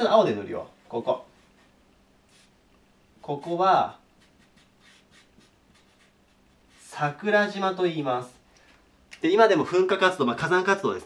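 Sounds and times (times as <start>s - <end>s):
marker scratching on paper: 1.0s - 2.6s, 3.2s - 7.2s.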